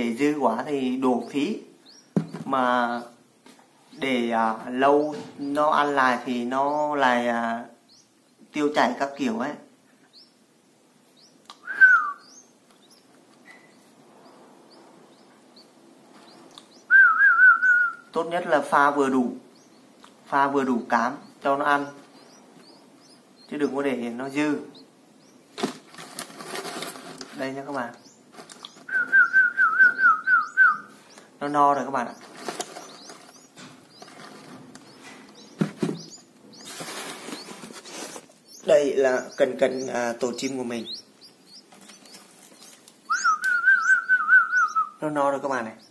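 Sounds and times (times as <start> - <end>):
bird nestlings chirping: 0.0 - 3.2, 3.8 - 45.9
sharp knocks: 2.1 - 2.6, 35.6 - 36.2
person whistling: 11.6 - 12.2, 16.9 - 18.0, 28.9 - 30.9, 43.1 - 45.0
rustle of handling: 25.6 - 29.0, 32.1 - 36.0, 36.6 - 38.6, 41.7 - 43.1.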